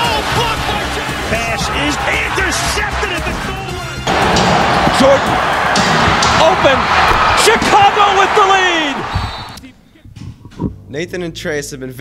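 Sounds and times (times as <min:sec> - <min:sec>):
arena crowd: 0:00.0 - 0:09.8.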